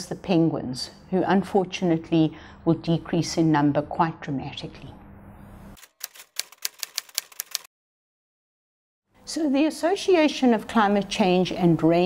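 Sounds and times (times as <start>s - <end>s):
typewriter key strikes: 5.8s - 7.7s.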